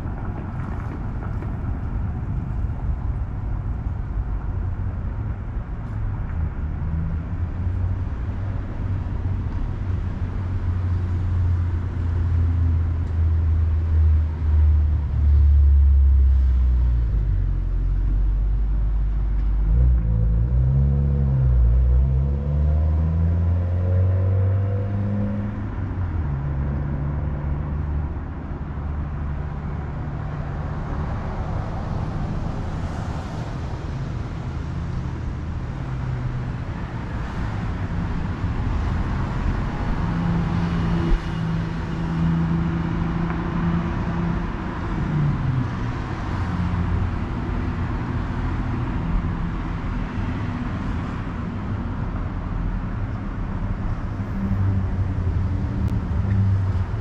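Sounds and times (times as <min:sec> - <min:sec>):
road traffic rumble: 0:00.0 - 0:57.0.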